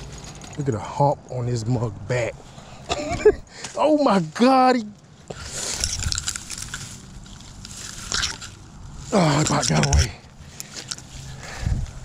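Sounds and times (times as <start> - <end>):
footsteps crunching through dry leaves: 5.4 - 9.4.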